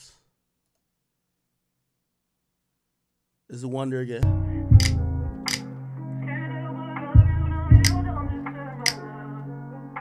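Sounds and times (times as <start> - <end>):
computer mouse click: 4.8 - 5.6.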